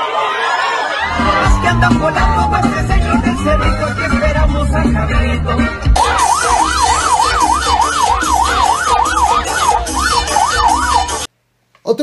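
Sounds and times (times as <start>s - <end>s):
police siren wailing: 0.0s - 11.3s
street noise: 0.0s - 11.3s.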